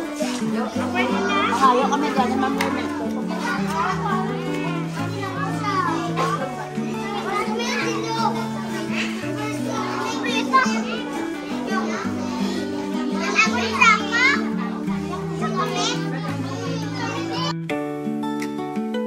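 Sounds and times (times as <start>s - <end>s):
children chattering and calling: 0.0s - 18.2s
slow music with held notes: 0.0s - 19.0s.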